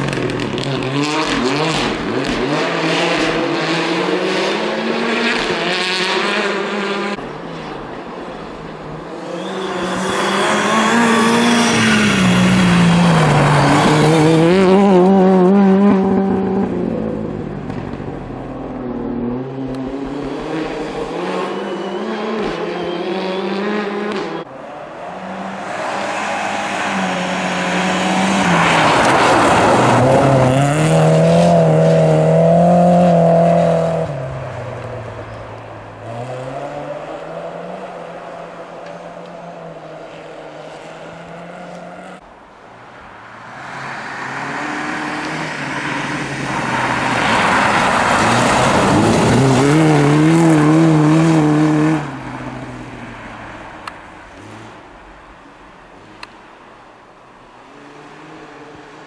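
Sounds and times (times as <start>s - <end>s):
rally car engines revving: 0.0s - 42.2s, 43.4s - 55.2s.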